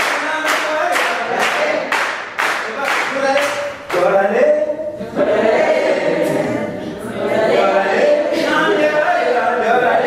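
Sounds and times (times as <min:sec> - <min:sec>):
sharp hand clap: 0:00.0 - 0:04.1
group singing a chant in unison: 0:03.9 - 0:10.0.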